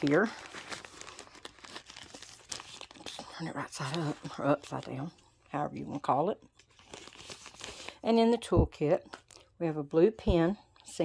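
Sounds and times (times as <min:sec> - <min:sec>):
plastic pouch crinkling: 0:00.0 - 0:05.2, 0:06.6 - 0:08.0.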